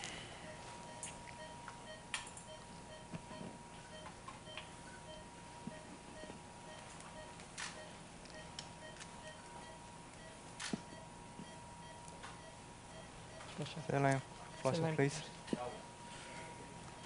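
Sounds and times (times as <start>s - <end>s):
patient monitor beeps: 0.0s - 17.0s.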